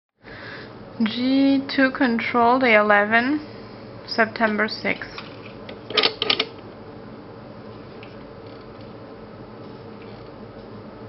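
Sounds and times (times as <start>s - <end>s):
steady background hum: 0.2s - 11.0s.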